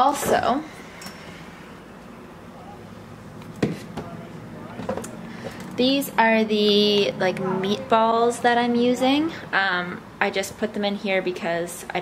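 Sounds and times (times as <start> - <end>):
refrigerator hum: 0.0 - 12.0.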